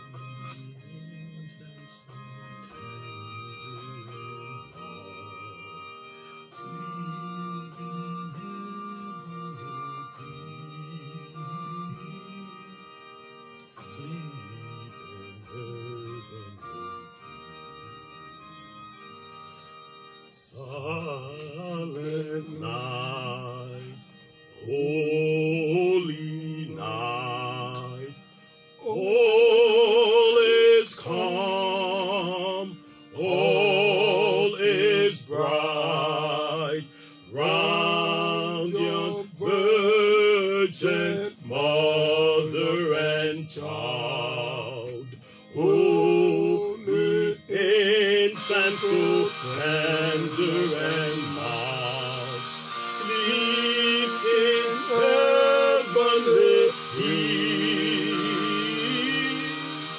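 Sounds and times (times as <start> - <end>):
person singing long notes: 0.0 - 5.8, 6.5 - 12.8, 13.8 - 17.0, 20.4 - 24.0, 24.6 - 28.2, 28.8 - 59.9
low musical accompaniment: 0.0 - 59.9.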